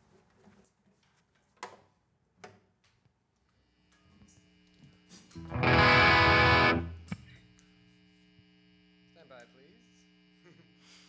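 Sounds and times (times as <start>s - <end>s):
distorted electric guitar chord: 5.4s - 7.2s
amplifier hum: 5.4s - 7.4s.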